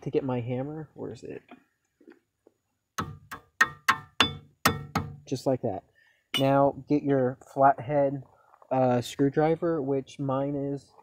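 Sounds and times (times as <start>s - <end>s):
hammer tapping on metal: 3.0s - 5.2s.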